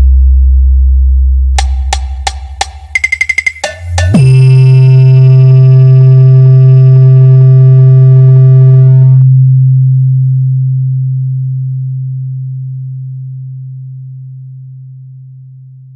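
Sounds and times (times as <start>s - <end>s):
deep electronic bass tone: 0.0s - 14.5s.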